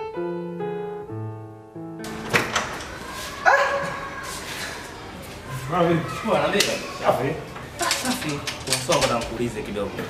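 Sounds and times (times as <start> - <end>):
door hinge creaking: 2.0 - 3.1.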